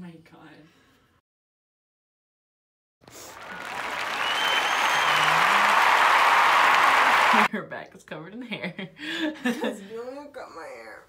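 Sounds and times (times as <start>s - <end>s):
faint thin whistle: 4.1s - 5.4s.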